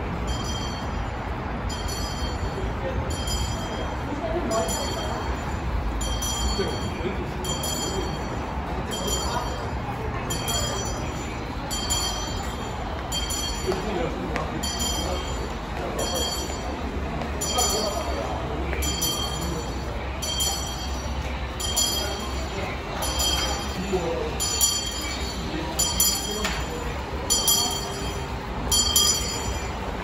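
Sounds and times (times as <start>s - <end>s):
busy indoor concourse noise: 0.0s - 30.0s
hand bell ringing: 0.2s - 30.0s.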